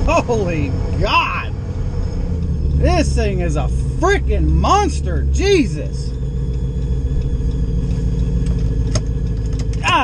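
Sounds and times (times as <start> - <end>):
engine rumbling from inside cab: 0.0 - 10.0.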